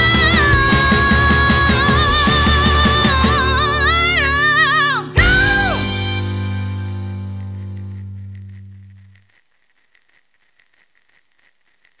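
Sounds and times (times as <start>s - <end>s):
faint clicks: 6.9s - 12.0s.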